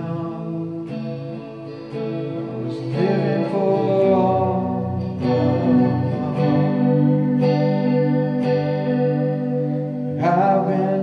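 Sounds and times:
electric guitar chords ringing: 0:00.0 - 0:11.0.

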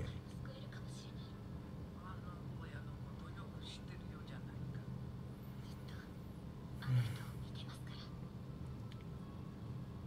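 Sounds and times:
woman speaking softly: 0:00.0 - 0:05.0, 0:06.8 - 0:08.2.

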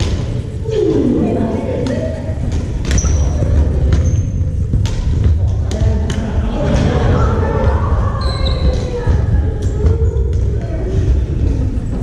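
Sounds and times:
steady low rumble: 0:00.0 - 0:12.0
voices: 0:00.0 - 0:12.0
high squeak: 0:02.9 - 0:04.4, 0:08.2 - 0:08.8.

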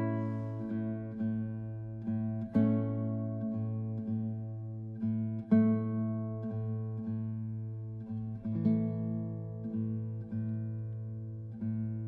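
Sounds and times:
classical guitar playing slowly: 0:00.0 - 0:12.0.

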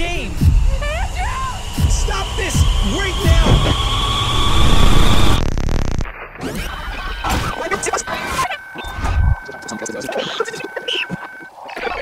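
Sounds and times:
dense noise with high tone: 0:00.0 - 0:06.2
stuttering electronic static glitch: 0:01.2 - 0:12.0.

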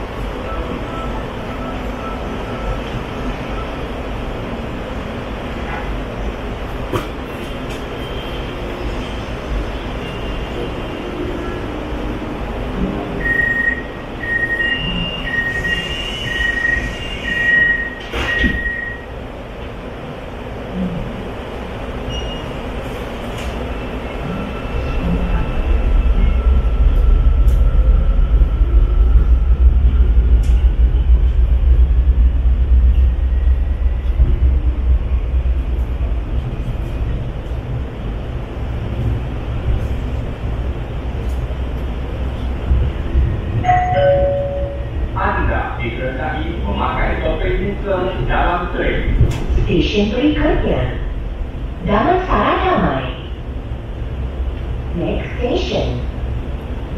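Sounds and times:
train rumble: 0:00.0 - 0:56.9
train doors closing with thud: 0:05.6 - 0:08.0, 0:13.8 - 0:19.8
door-warning beeps: 0:13.2 - 0:19.1.

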